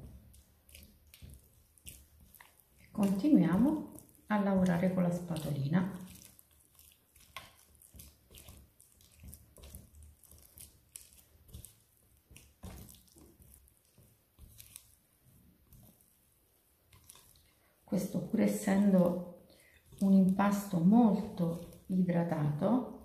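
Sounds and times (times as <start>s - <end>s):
wet dough squelching: 0.0s - 23.0s.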